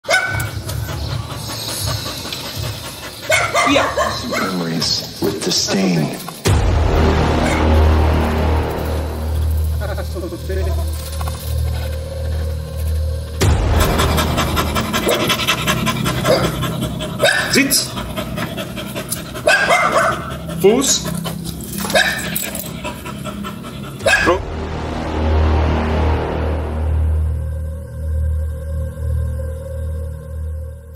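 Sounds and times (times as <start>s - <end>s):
dog panting: 0.1s - 5.2s, 11.9s - 24.7s
low rumble: 6.4s - 17.3s, 22.7s - 30.9s.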